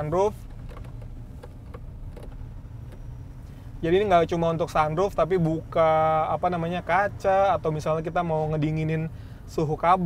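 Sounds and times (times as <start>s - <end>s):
man talking: 0.0s - 0.4s, 3.8s - 10.0s
car cabin road rumble: 0.0s - 10.0s.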